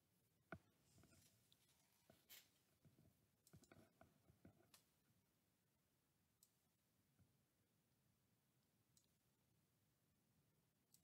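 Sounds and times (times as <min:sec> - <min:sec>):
computer mouse clicks: 0:03.4 - 0:04.9, 0:08.9 - 0:09.2.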